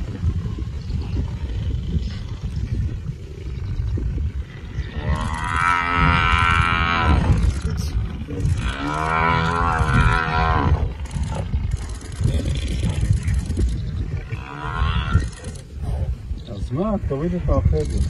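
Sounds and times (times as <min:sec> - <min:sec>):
buffalo bellowing in distress: 0:04.6 - 0:07.5, 0:08.5 - 0:11.5.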